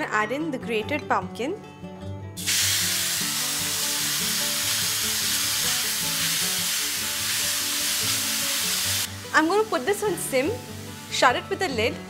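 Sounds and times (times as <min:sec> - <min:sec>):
pumpkin sizzling in hot fat: 0:02.4 - 0:11.4.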